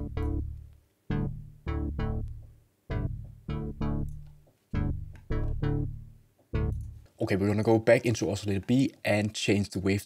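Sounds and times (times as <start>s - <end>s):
plucky synth chord stabs: 0.0s - 7.0s.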